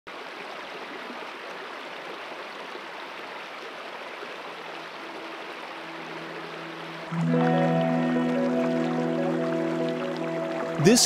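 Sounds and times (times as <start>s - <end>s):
creek water rushing: 0.1s - 11.0s
faint held musical notes: 5.1s - 11.0s.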